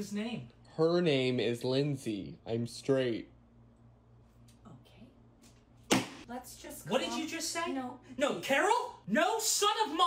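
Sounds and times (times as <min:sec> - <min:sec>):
steady low hum: 0:00.0 - 0:09.1.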